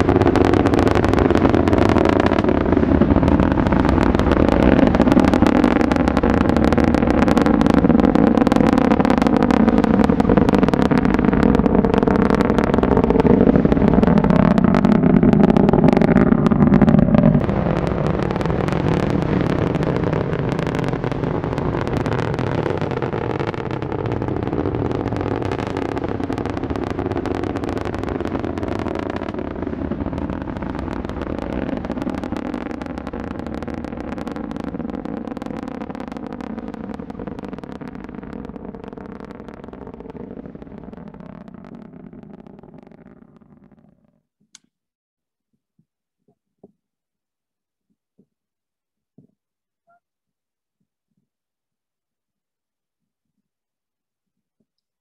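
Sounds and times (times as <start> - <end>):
distant rocket engine rumble: 0.0 - 44.2.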